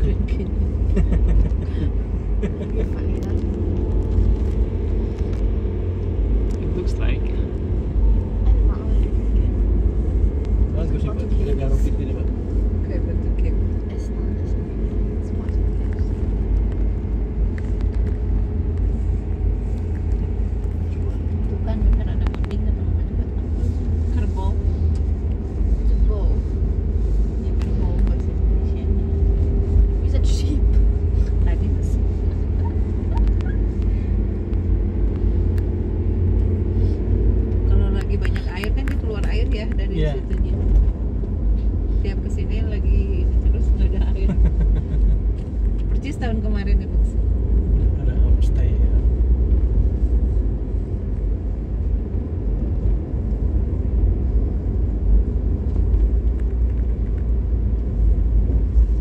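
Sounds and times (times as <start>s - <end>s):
car engine and tyres on road: 0.0s - 59.0s.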